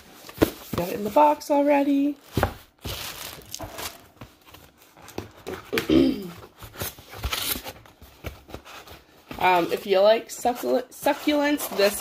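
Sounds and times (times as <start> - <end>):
packaging rustling and tearing: 2.2 - 9.8.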